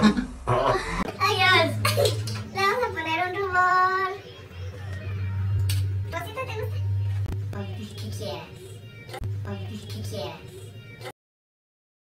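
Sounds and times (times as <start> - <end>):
person laughing: 0.0 - 1.1.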